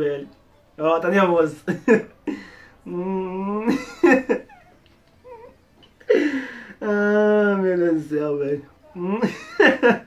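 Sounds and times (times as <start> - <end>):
person whining: 4.3 - 6.4.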